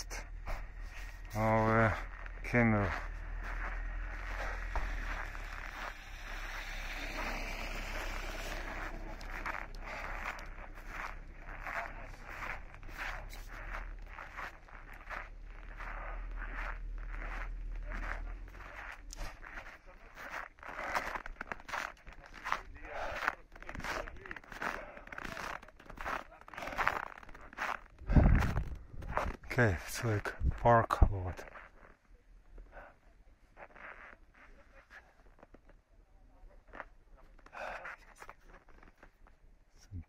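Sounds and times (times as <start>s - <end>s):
footsteps crunching on snow: 0.0s - 32.0s.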